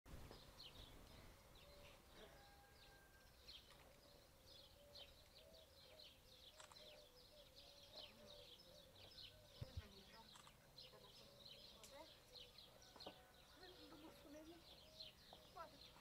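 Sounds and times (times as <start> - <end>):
small birds chirping: 0.1 - 16.0.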